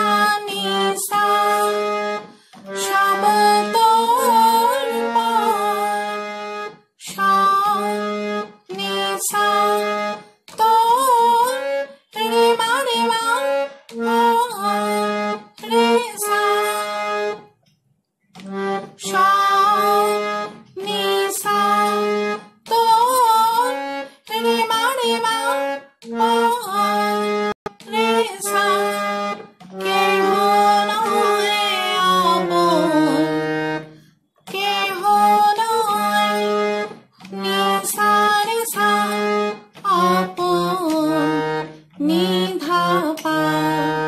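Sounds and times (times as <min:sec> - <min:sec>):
low held harmonium notes: 0:00.0 - 0:17.5, 0:18.3 - 0:44.0
harmonium melody: 0:00.0 - 0:17.7, 0:18.3 - 0:44.0.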